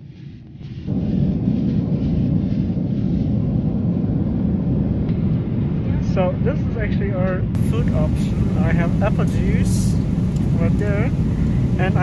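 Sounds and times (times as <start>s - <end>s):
airliner cabin engine rumble: 0.9s - 12.0s.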